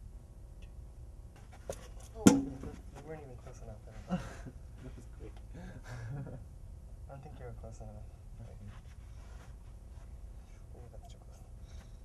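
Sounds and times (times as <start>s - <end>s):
rustling handling noise: 8.4s - 10.6s.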